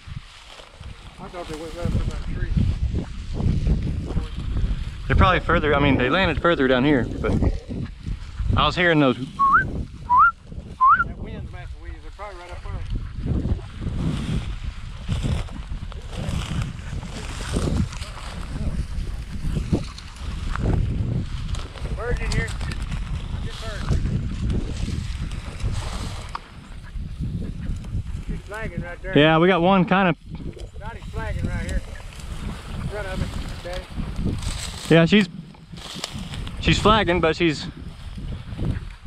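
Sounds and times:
footsteps through dry grass: 0.0 - 39.0
wind buffeting microphone: 0.0 - 39.0.

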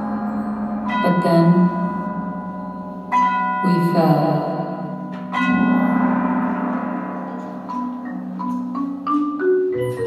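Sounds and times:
bell-like mallet notes: 0.0 - 10.0
marimba ensemble playing: 0.0 - 10.0.

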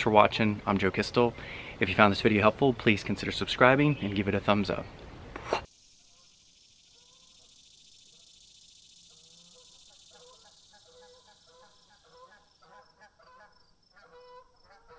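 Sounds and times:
steady high hiss: 0.1 - 12.7
faint honking bird calls: 9.1 - 14.9.

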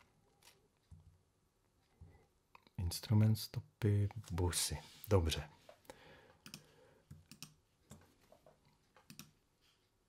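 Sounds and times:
computer mouse clicks: 6.4 - 8.1, 9.0 - 9.4.

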